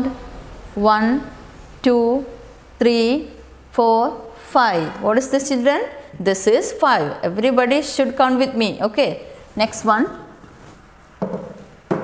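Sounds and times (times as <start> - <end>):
wooden rod knocking on table: 11.2 - 12.0.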